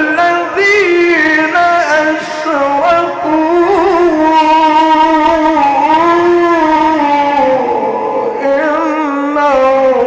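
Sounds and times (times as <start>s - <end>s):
man reciting melodically: 0.0s - 10.0s.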